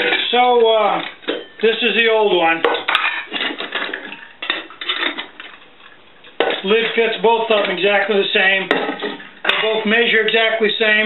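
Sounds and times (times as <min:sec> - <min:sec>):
metal kettles clinking: 0:00.0 - 0:11.0.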